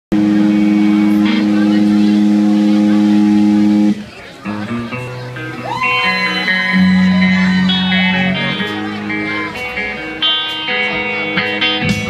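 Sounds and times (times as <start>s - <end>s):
band holding a loud chord: 0.1s - 12.0s.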